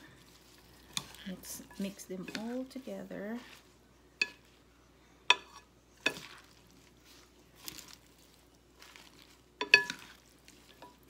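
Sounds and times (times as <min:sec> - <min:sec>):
salad leaves rustling: 0:00.0 - 0:04.7, 0:06.0 - 0:11.0.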